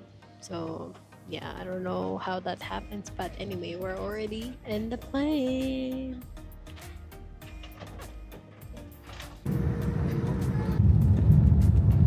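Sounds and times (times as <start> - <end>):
soft background music: 0.0 - 12.0
airliner landing rumble: 9.5 - 12.0.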